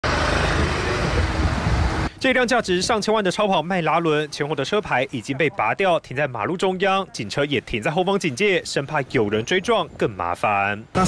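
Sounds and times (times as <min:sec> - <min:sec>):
road traffic rumble and hiss: 0:00.0 - 0:11.0.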